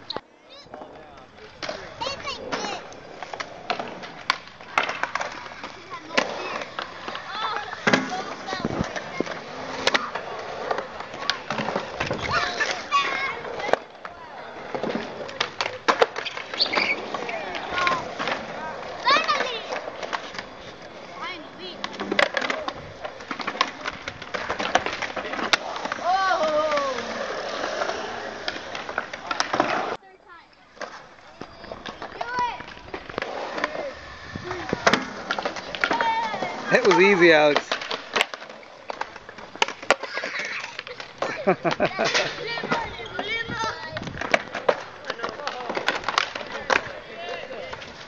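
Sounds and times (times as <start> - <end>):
skateboard wheels rolling on concrete: 0.0 - 48.0
skateboards clacking on ground: 0.0 - 48.0
voices: 0.0 - 48.0.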